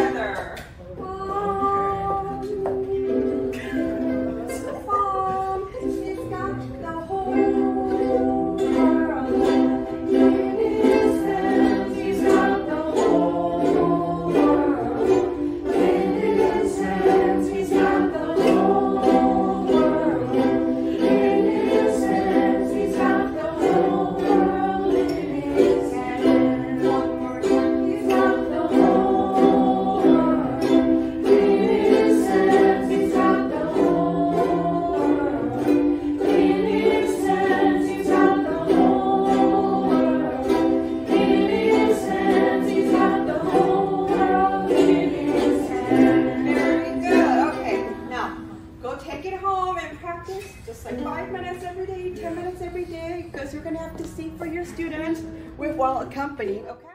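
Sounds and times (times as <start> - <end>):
ukuleles strumming: 0.0 - 56.9
group singing: 0.8 - 48.6.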